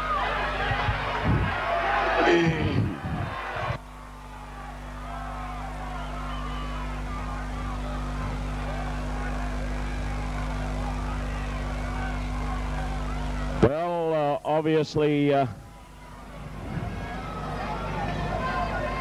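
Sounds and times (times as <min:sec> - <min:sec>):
crowd chatter: 0:00.0 - 0:19.0
electrical mains hum: 0:00.0 - 0:19.0.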